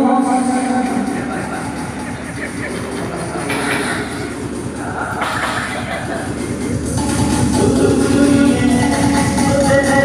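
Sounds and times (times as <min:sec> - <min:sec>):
steady noisy background: 0:00.0 - 0:10.0.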